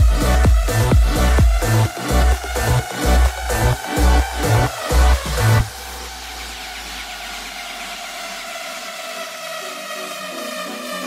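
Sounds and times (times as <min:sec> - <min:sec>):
deep bass: 0:00.0 - 0:11.0
held synth chords: 0:00.0 - 0:11.0
hiss-like wash: 0:05.6 - 0:11.0.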